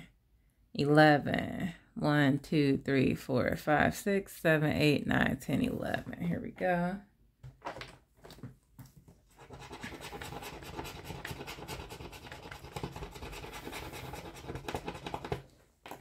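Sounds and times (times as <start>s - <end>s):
rapid scratching of coating: 9.3s - 16.0s.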